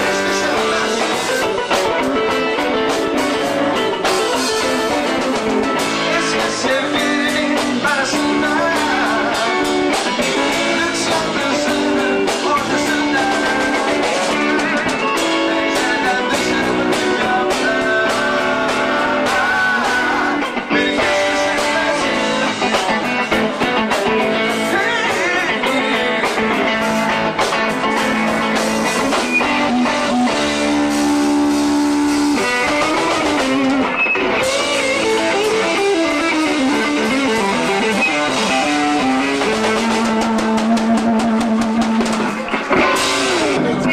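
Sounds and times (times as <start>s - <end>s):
drums: 0.0s - 43.9s
electric guitar lead: 0.0s - 43.9s.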